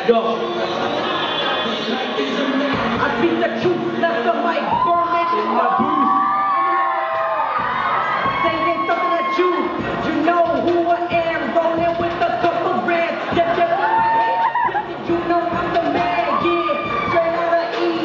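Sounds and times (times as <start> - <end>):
crowd cheering and shouting: 0.0 - 18.0
hip-hop backing track: 0.0 - 18.0.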